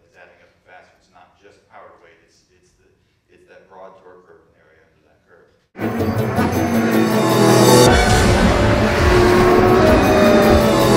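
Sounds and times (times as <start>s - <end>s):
car engine revving: 5.8s - 10.9s
theme music: 5.8s - 10.9s.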